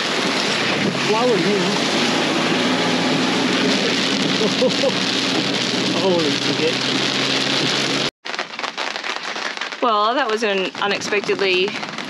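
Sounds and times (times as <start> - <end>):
engine humming: 0.0 - 8.1
heavy rain on car roof: 0.0 - 12.0
rain pattering on canvas awning: 0.0 - 12.0.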